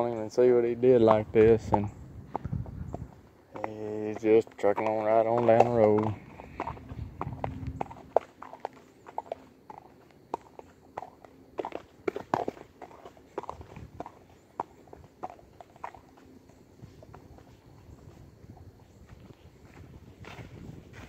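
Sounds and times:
horse hoofbeats on mud: 0.0s - 21.0s.

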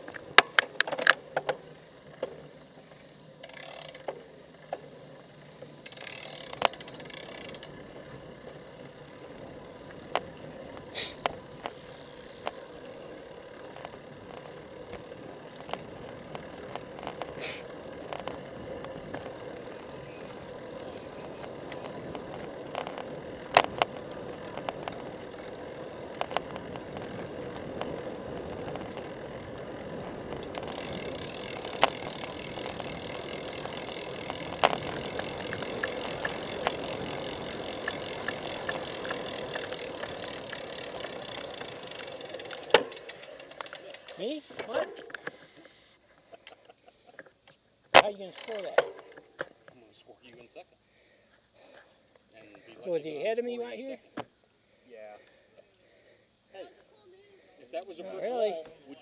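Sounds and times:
bicycle tyres rolling: 0.0s - 59.0s.

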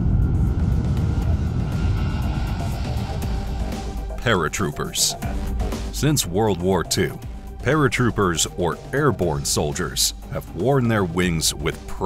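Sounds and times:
jet engines rumbling: 0.0s - 11.2s
background music with steady beat: 0.0s - 12.0s.

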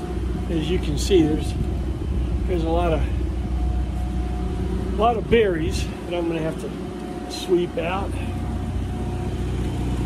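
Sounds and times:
faint steady whine: 0.0s - 10.0s
generator humming: 0.0s - 10.0s.

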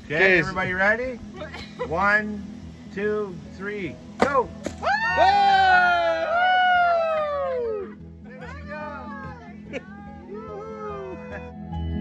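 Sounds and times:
soft background music: 0.0s - 12.0s
women screaming: 4.8s - 11.6s.

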